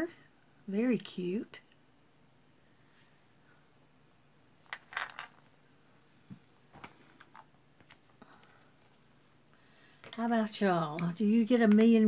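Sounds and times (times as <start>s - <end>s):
earrings clinking on a hard tray: 4.7s - 5.4s.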